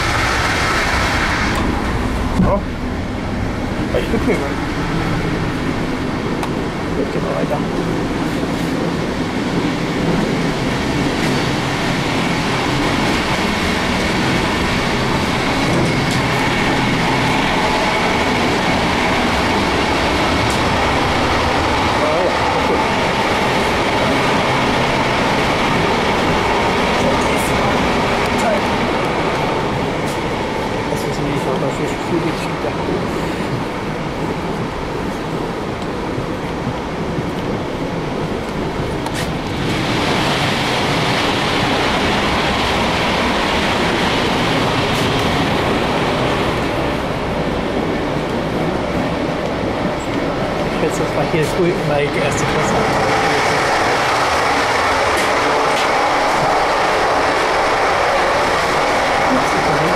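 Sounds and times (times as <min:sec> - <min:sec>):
train wheels rumbling on track: 0:00.0 - 0:59.9.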